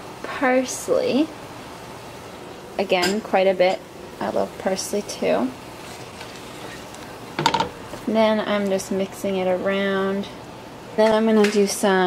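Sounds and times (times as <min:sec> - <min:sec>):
low steady hiss of sauce: 0:00.0 - 0:12.0.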